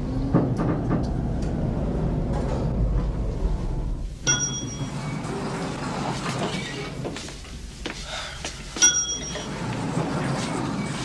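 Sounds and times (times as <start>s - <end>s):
bright metallic ding: 4.2s - 5.0s, 8.8s - 9.5s.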